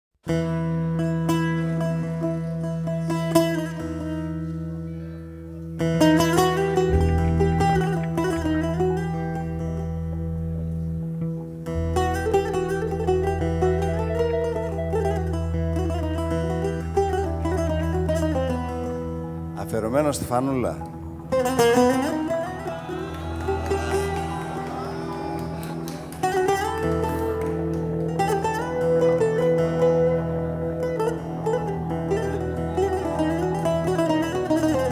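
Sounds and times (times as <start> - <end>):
plucked-string melody: 0.3 - 34.9
person singing: 22.4 - 27.7.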